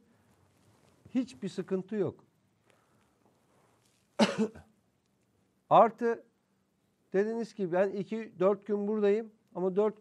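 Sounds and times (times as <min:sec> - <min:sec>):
man coughing: 0:04.2 - 0:04.7.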